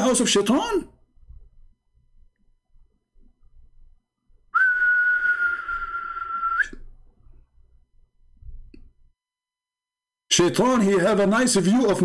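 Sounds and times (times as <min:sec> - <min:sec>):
person whistling a steady note: 0:04.5 - 0:06.8.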